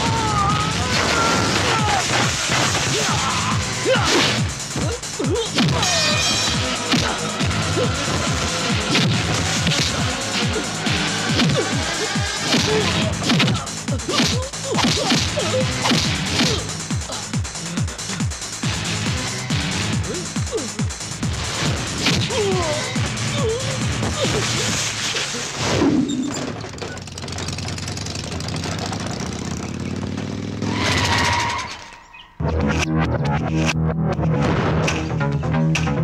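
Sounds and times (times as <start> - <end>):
auto-rickshaw engine running: 6.3 - 13.2, 25.4 - 31.9.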